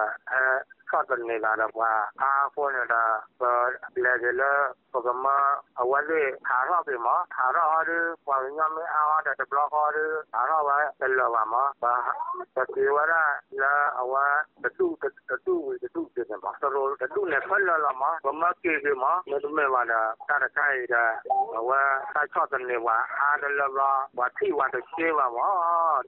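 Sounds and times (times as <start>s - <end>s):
person reading news: 0.0s - 26.0s.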